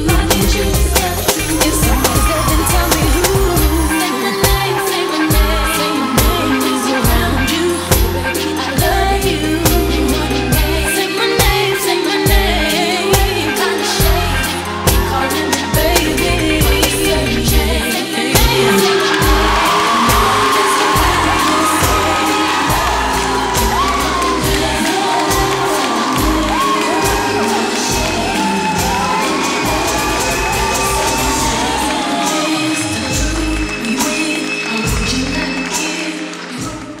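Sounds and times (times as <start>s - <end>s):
people cheering and whooping: 0.0s - 37.0s
pop music with singing: 0.0s - 37.0s.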